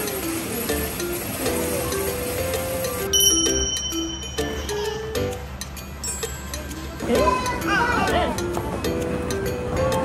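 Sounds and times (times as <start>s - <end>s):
light background music: 0.0s - 10.0s
bright bell ding: 3.1s - 5.3s.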